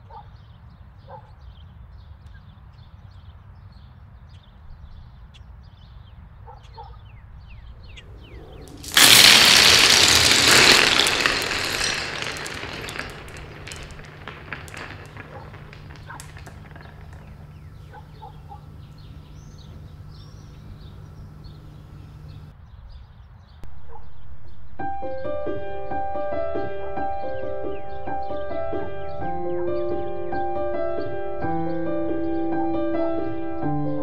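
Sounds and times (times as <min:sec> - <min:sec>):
marbles clattering on tile floor: 0:08.2 - 0:22.5.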